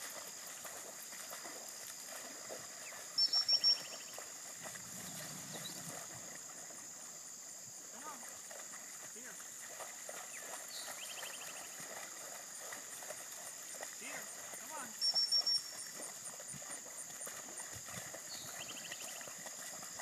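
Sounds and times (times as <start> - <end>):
insect drone: 0.0 - 20.0
faint bird chirps: 2.9 - 4.2, 14.9 - 16.0.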